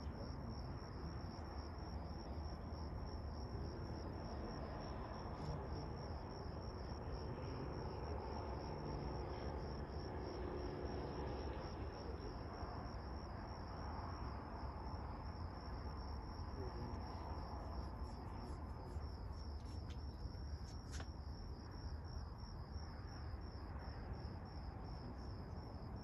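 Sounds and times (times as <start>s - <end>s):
crickets chirping: 0.0s - 26.0s.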